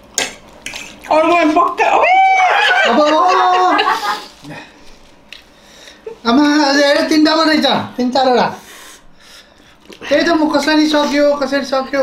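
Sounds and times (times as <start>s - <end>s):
person crying out excitedly: 1.8s - 4.2s.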